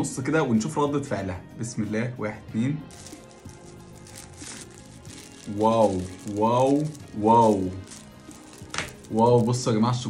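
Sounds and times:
quiet background music: 0.0s - 10.0s
spoon crackling into cake: 2.9s - 9.6s.

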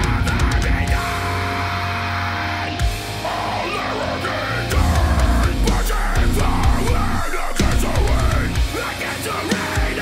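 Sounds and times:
distorted guitar chord: 0.0s - 8.9s
metalcore song: 0.0s - 10.0s.

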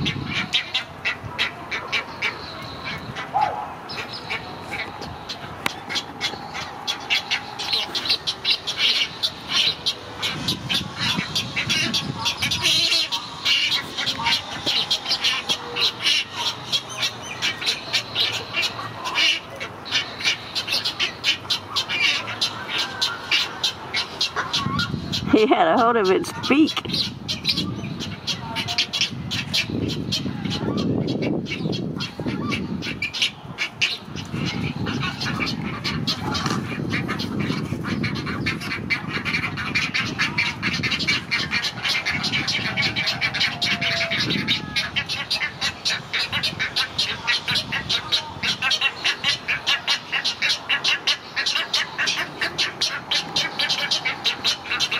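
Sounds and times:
egret chicks chattering calls: 0.0s - 54.9s.

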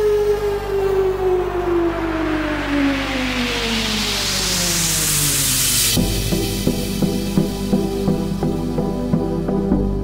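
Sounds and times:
synth tone sliding downward: 0.0s - 9.9s
steady low drone: 0.0s - 10.0s
hissing noise sweep: 1.1s - 10.0s.

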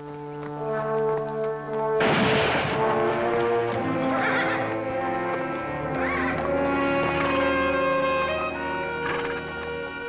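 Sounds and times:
orchestral theme music: 0.0s - 10.0s
horse whinnying: 3.8s - 4.7s, 5.8s - 8.2s.

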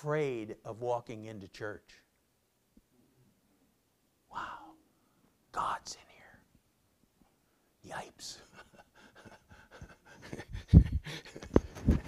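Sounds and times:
man speaking softly: 5.5s - 6.4s, 7.8s - 8.8s.

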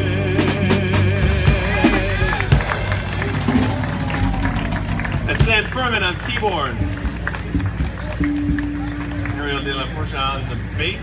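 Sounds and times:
man singing with vibrato: 0.0s - 3.2s
live jazz combo: 0.0s - 10.5s
voices: 0.0s - 11.0s
drum hits: 0.6s - 9.3s.

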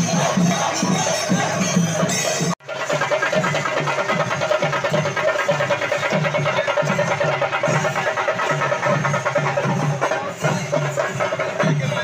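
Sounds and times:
drum ensemble fast rhythm: 0.0s - 12.0s.

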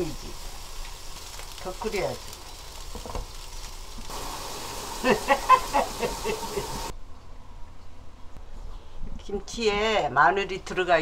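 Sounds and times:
steam hissing: 0.0s - 6.9s
stew boiling in a pot: 0.0s - 6.9s
burst of laughter: 5.0s - 6.8s.

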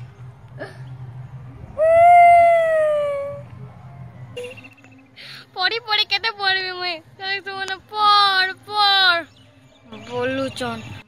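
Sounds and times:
boy wailing: 1.8s - 3.4s.

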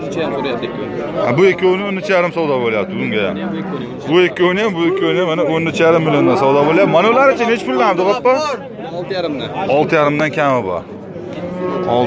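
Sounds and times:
young bull mooing: 2.6s - 4.0s, 11.3s - 12.0s.

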